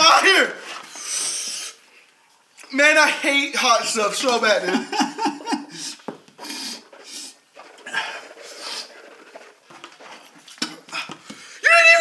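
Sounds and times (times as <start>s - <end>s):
man laughing high-pitched: 4.6s - 6.0s
man spitting into bucket: 5.6s - 11.6s.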